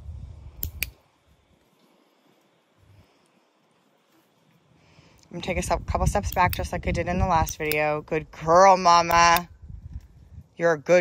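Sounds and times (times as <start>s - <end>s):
low rumble: 0.0s - 0.6s
training clicker clicks: 0.6s - 1.0s, 7.4s - 7.9s.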